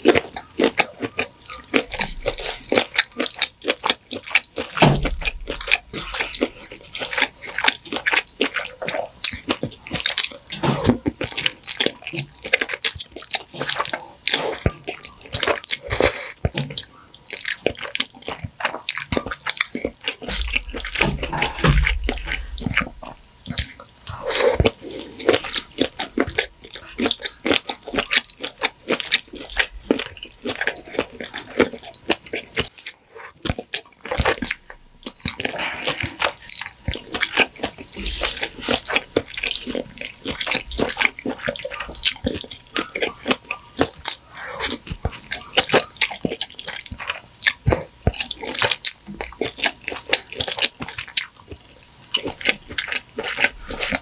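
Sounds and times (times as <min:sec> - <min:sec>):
wet chewing and mouth smacks: 0:00.0 - 0:54.0.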